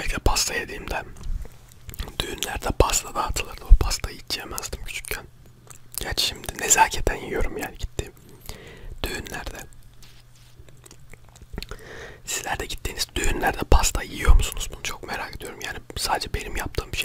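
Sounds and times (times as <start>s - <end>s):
wet chewing and mouth sounds: 5.0s - 6.6s, 9.7s - 11.8s.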